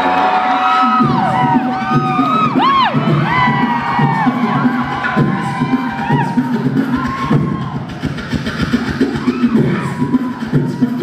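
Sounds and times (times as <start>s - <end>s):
beatboxing through speakers: 0.0s - 11.0s
crowd cheering: 0.0s - 11.0s.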